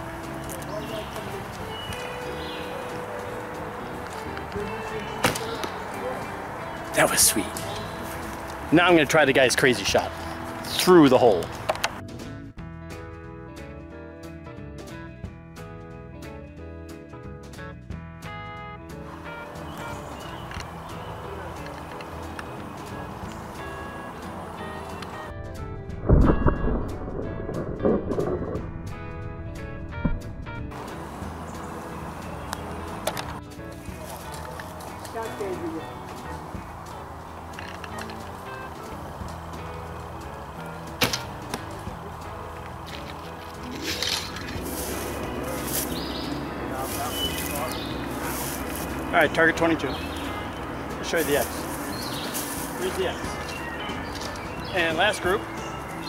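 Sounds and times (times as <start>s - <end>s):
background music: 0.0s - 56.0s
heavy low thump: 25.4s - 30.9s
arrows striking foam target: 41.0s - 41.7s.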